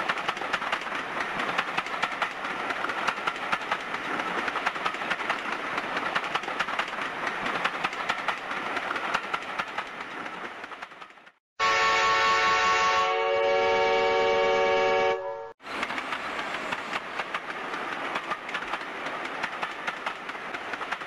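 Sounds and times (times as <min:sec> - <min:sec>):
train wheels rattling over rails: 0:00.0 - 0:11.4, 0:15.6 - 0:21.0
train horn chord: 0:11.6 - 0:15.6.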